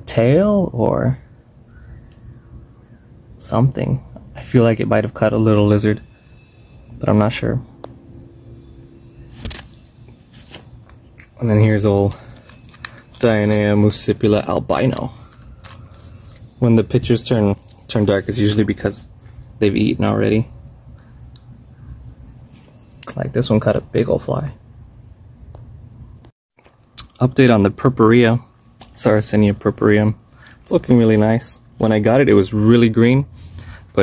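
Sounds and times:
faint low rumble: 1.6s - 22.5s
sharp click: 9.3s - 9.8s
handling rustle: 9.4s - 18.8s.

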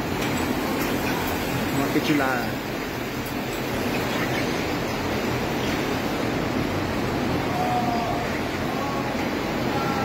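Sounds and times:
milking machinery running: 0.0s - 10.0s.

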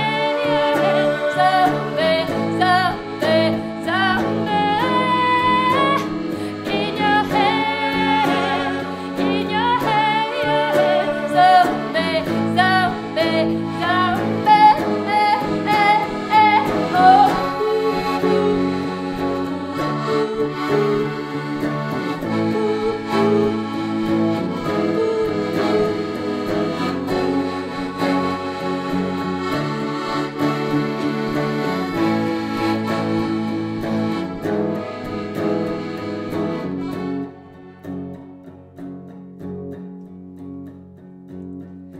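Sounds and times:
woman singing high notes: 0.0s - 6.1s
piano accordion: 0.0s - 39.5s
electric guitar: 0.0s - 41.9s.

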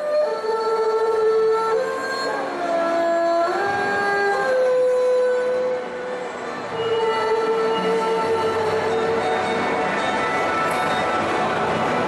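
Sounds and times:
bowed erhu sliding notes: 0.0s - 12.0s.

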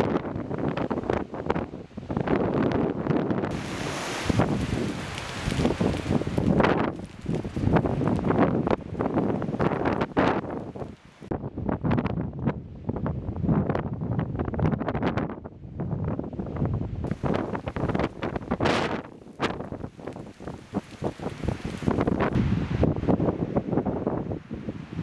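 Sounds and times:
gusty wind on microphone: 0.0s - 25.0s
fire cracking: 3.5s - 11.3s, 17.0s - 23.2s.

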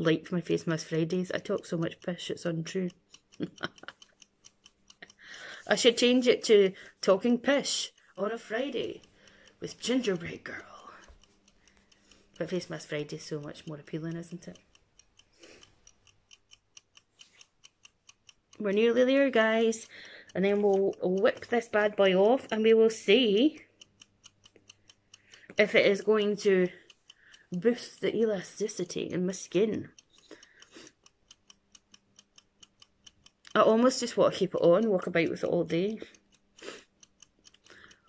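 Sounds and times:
faint mechanical ticking: 0.0s - 38.0s
faint steady hum: 5.0s - 14.5s.

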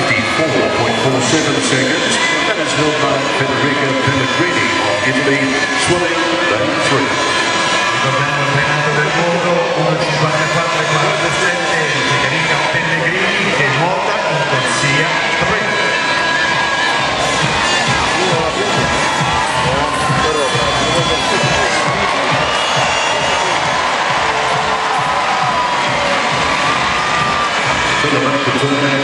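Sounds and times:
crowd cheering and shouting: 0.0s - 29.0s.

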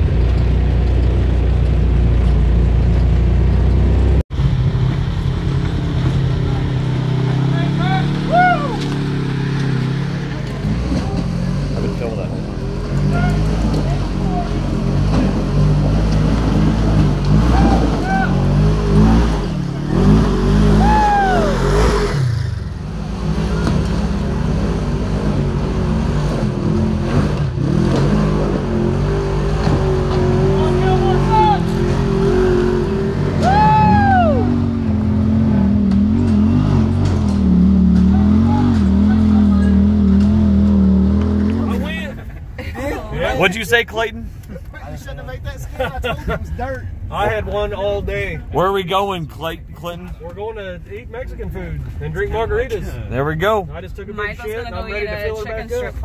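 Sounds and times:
off-road vehicle engines revving: 0.0s - 56.0s.

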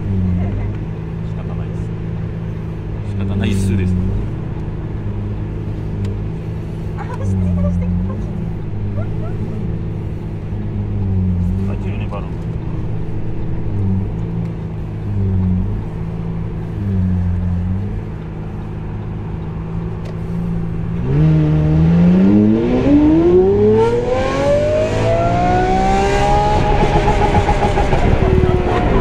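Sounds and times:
sports car engine revving: 0.0s - 29.0s.

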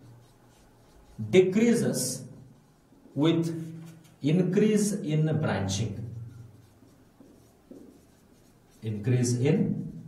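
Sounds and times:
marker scratching on whiteboard: 0.0s - 10.0s.

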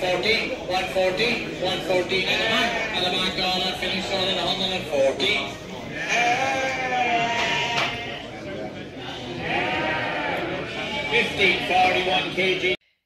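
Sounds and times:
general hubbub: 0.0s - 12.8s
lambs bleating: 2.3s - 3.3s, 5.9s - 8.0s, 9.4s - 11.2s.

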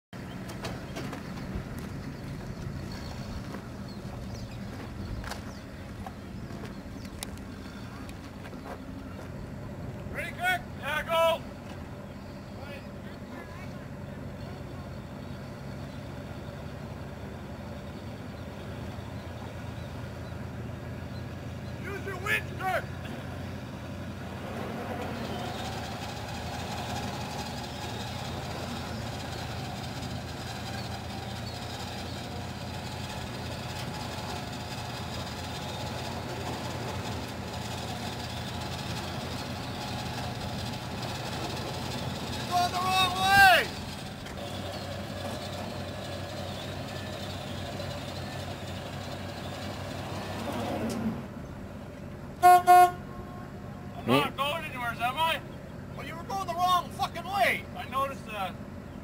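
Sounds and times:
truck engine idling: 0.1s - 59.0s
person shouting: 42.5s - 43.8s
horn toots: 52.4s - 54.4s.

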